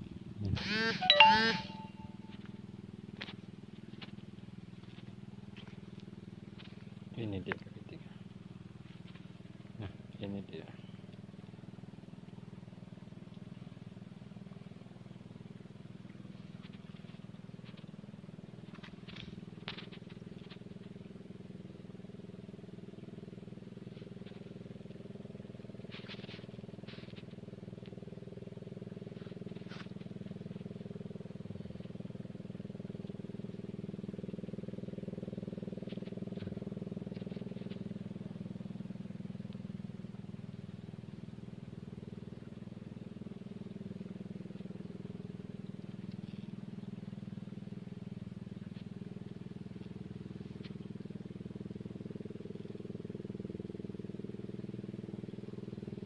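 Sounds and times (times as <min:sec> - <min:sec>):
boat engine droning: 0:00.0 - 0:56.0.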